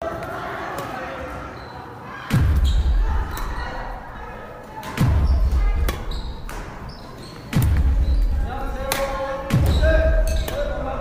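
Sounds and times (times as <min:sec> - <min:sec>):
racket striking shuttlecock: 0:05.8 - 0:06.8.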